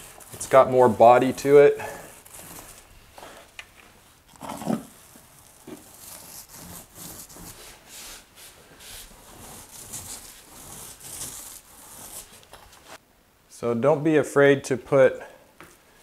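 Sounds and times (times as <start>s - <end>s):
paint roller wet swishing: 0.0s - 3.3s, 4.0s - 13.0s.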